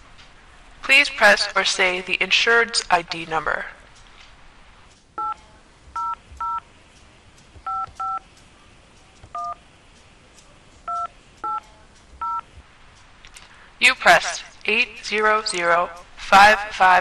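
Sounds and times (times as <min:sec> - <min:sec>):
touch-tone keypad beeps: 0:06.0 - 0:06.6, 0:07.7 - 0:08.2, 0:09.4 - 0:09.6, 0:10.9 - 0:11.6, 0:12.2 - 0:12.4.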